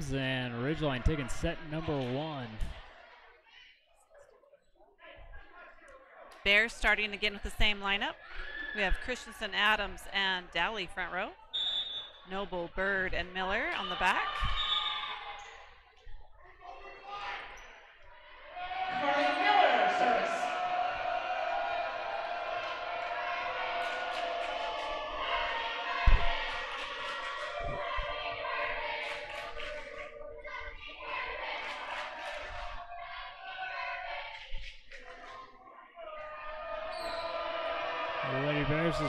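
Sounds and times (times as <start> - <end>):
murmur of spectators: 0.0 - 39.0.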